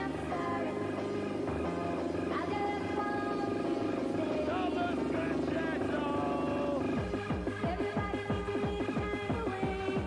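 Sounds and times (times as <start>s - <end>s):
fast buzzing synth: 0.0s - 10.0s.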